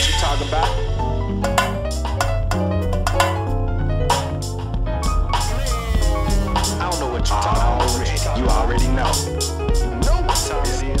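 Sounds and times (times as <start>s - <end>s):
bass and keyboard backing: 0.0s - 11.0s
electronic bongo drum hits: 0.0s - 11.0s.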